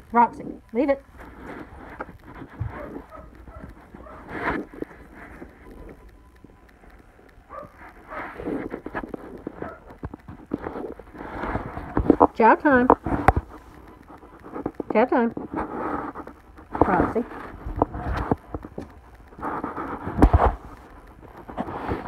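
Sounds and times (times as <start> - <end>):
dog rustling against phone: 1.0 - 22.0.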